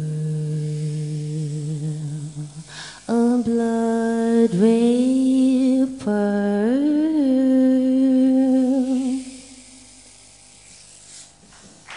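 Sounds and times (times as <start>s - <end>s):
woman singing long held note: 0.0s - 9.8s.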